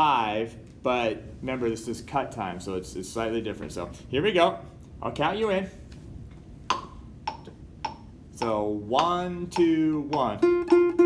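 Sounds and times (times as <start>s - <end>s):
metronome clicks: 6.7s - 11.0s.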